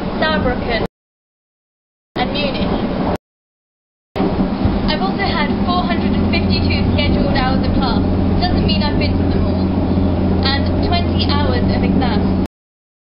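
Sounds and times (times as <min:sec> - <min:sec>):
train low rumble and hum: 0:00.0 - 0:00.9, 0:02.2 - 0:03.2, 0:04.2 - 0:12.5
woman talking: 0:00.2 - 0:00.9, 0:02.2 - 0:02.8, 0:04.9 - 0:09.7, 0:10.4 - 0:12.5.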